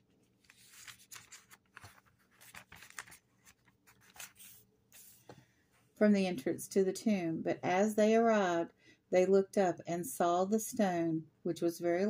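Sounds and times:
thin pages rustling and crinkling: 0:00.1 - 0:05.2.

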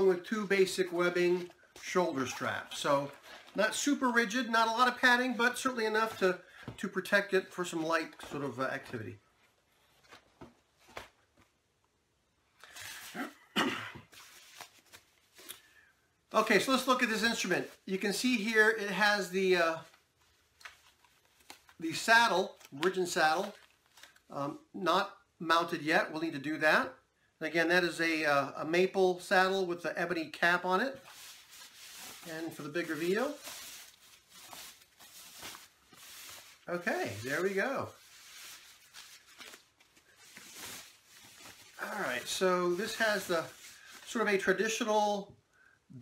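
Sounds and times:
sheet rustling and scraping: 0:30.8 - 0:44.6.

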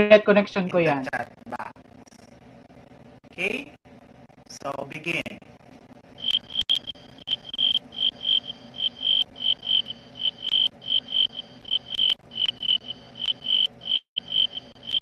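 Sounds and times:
cricket chirping: 0:06.2 - 0:15.0.

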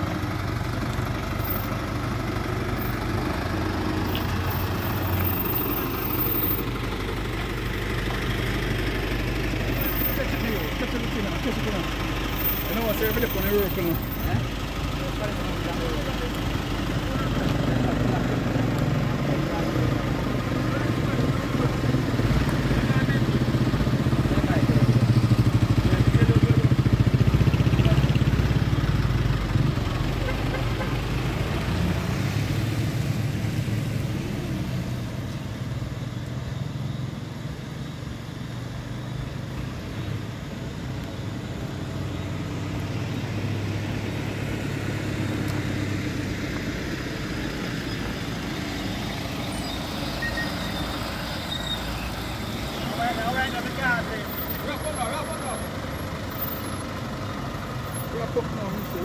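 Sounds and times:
vehicle engines in slow traffic: 0:00.0 - 0:59.0.

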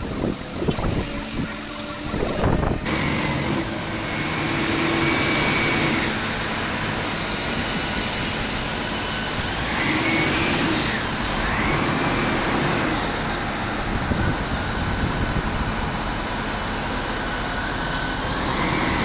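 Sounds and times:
diesel engine running: 0:00.0 - 0:19.0
faint engine whine: 0:00.0 - 0:19.0.

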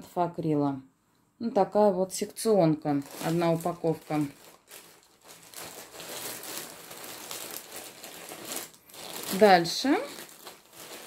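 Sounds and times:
plastic bag crinkling: 0:02.9 - 0:11.0.

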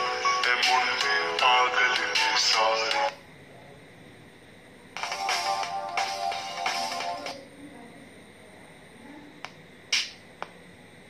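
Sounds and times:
song through phone speaker: 0:00.0 - 0:03.2, 0:05.0 - 0:07.4.

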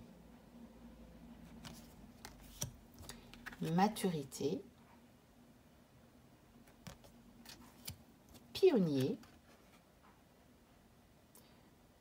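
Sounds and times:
cards rustling: 0:01.5 - 0:03.8, 0:06.7 - 0:09.8
person speaking: 0:01.6 - 0:04.7, 0:07.8 - 0:09.4.

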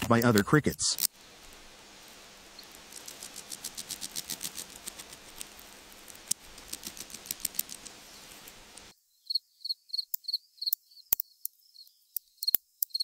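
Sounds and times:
scratchy clicking: 0:00.0 - 0:01.1, 0:02.6 - 0:08.9
faint hiss: 0:00.0 - 0:09.0
cricket chirping: 0:08.9 - 0:13.0.

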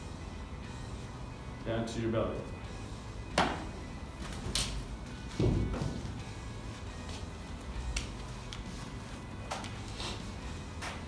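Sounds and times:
faint background music: 0:00.0 - 0:11.0
dull thump: 0:05.3 - 0:06.2.

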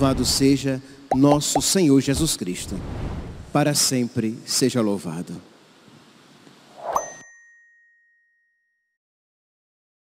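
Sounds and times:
bright bell ding: 0:06.9 - 0:08.8.

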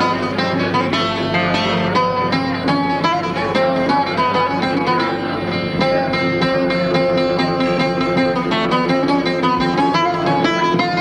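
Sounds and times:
acoustic guitar strummed chords: 0:00.0 - 0:11.0
bouzouki plucked notes: 0:00.0 - 0:11.0.

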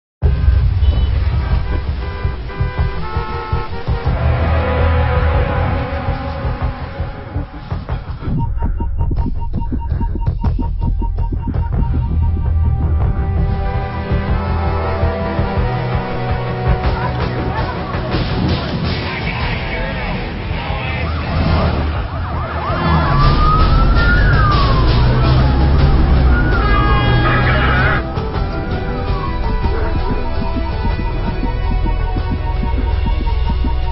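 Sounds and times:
vehicle low rumble: 0:00.2 - 0:16.6
steady low rumble: 0:00.2 - 0:26.6, 0:27.5 - 0:33.9
music: 0:00.2 - 0:33.9
emergency siren wailing: 0:20.1 - 0:33.9.

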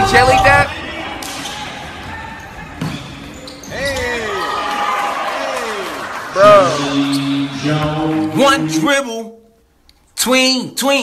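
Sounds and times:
basketball bouncing on gym floor: 0:01.2 - 0:04.1.

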